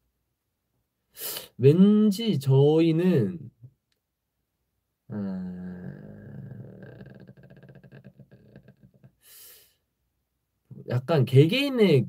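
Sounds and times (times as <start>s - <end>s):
man humming thinking sound: 5.1s - 9.3s
creaky vocal fry: 5.1s - 9.5s.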